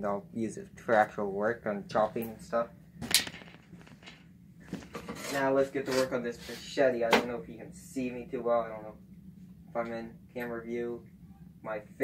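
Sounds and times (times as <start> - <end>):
faint handling sounds: 3.1 - 6.7.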